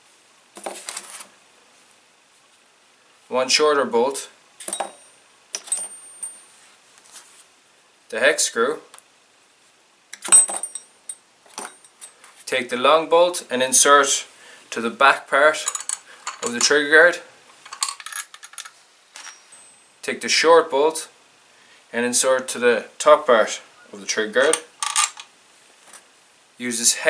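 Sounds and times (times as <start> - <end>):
metal bolts clinking: 4.6 - 6.4, 10.2 - 12.2, 15.6 - 16.8, 17.6 - 19.8, 24.4 - 25.3
high metallic ring: 4.7 - 6.6, 19.2 - 20.0
metallic clicks of small parts: 15.6 - 16.8, 17.6 - 19.4.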